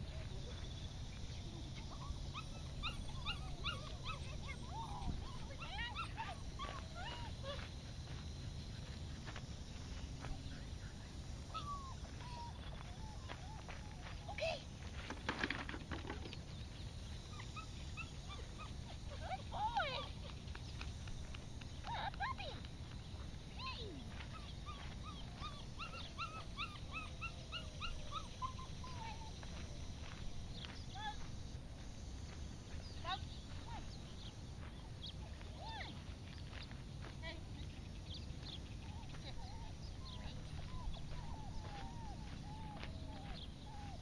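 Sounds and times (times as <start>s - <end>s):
dog yipping: 1.9s - 7.6s, 11.5s - 14.6s, 17.3s - 20.2s, 23.7s - 29.3s.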